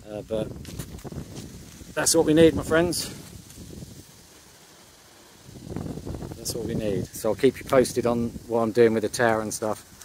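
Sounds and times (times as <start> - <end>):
low wind rumble: 0.0 - 10.0.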